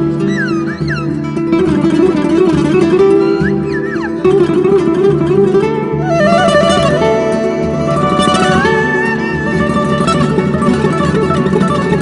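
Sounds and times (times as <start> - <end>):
classical guitar flamenco piece: 0.0 - 12.0
high sliding melodic line: 6.0 - 11.6.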